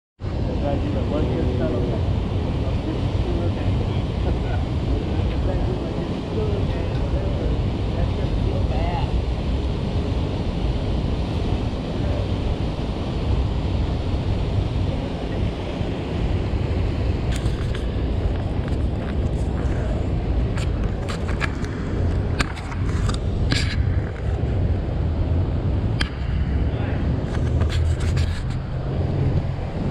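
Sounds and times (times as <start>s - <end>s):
low city rumble: 0.2s - 29.9s
outdoor noise: 0.2s - 29.9s
wind on microphone: 0.2s - 29.9s
faint voices: 0.3s - 10.4s, 11.2s - 25.0s, 26.0s - 29.9s.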